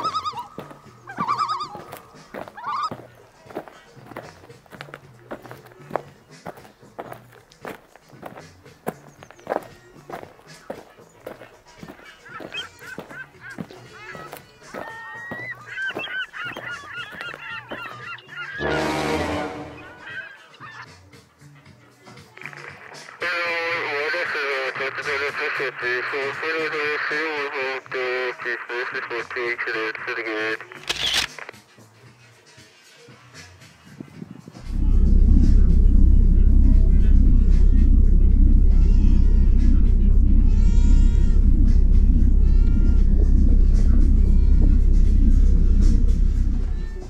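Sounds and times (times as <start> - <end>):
wavering high-pitched calls: 0.0 - 3.0
footsteps on stone paving: 0.0 - 18.1
background music with bass: 0.0 - 28.3, 33.2 - 47.0.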